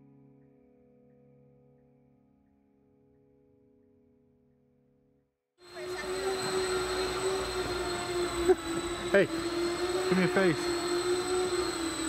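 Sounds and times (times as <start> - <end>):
electric aircraft motors whining: 5.6 - 12.0.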